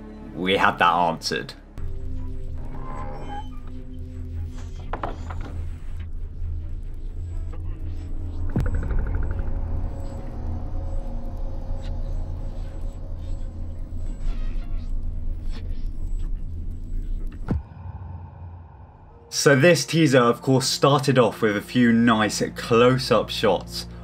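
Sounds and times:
dark low rumbling drone: 1.7 - 19.8.

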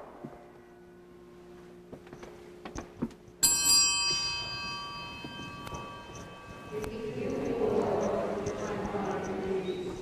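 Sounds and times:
small bell ringing: 3.4 - 7.8.

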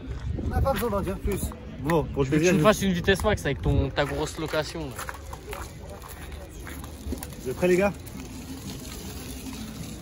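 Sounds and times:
scooter tyres rolling on gravel: 3.4 - 10.0.

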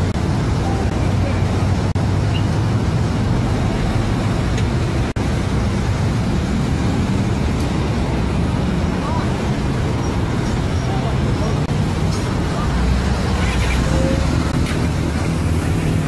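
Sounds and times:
road traffic rumble: 0.0 - 16.0
voices: 8.7 - 14.6.

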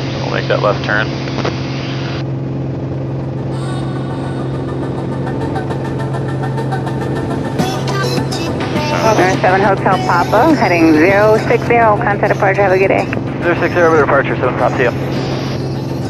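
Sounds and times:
aircraft engine and propeller drone: 0.0 - 16.0
background music with steady beat: 7.2 - 11.7.

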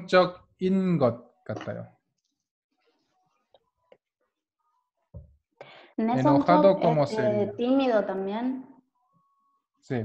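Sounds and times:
man speaking over video call: 0.0 - 1.9, 6.2 - 7.5.

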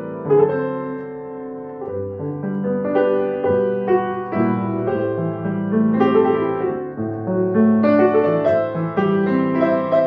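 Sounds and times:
grand piano playing hymn chords: 0.0 - 10.0.

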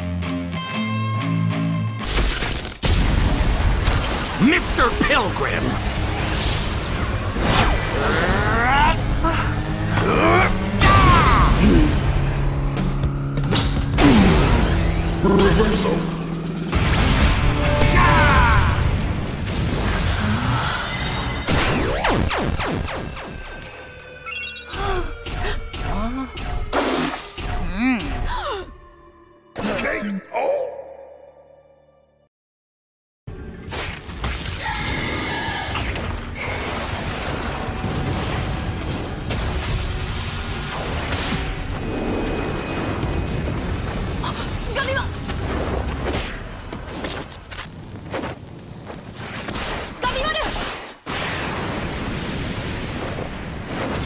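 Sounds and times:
action soundtrack music: 0.0 - 30.2
action sound effects: 2.0 - 25.4.

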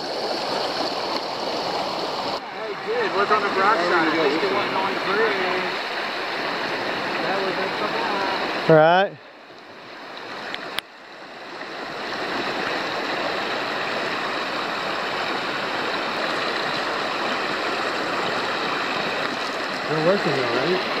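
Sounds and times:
creek rushing over gravel: 0.0 - 9.0, 9.7 - 21.0.

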